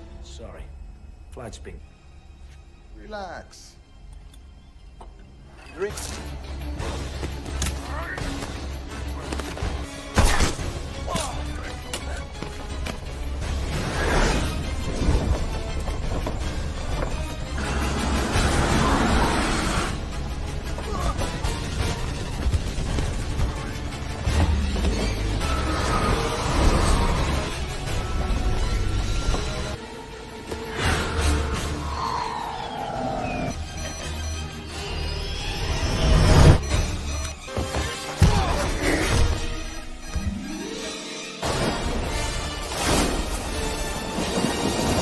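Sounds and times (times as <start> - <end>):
film soundtrack music: 0.0 - 45.0.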